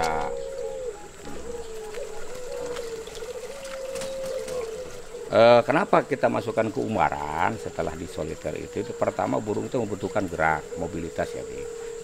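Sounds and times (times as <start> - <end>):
doves cooing: 0.0 - 12.0.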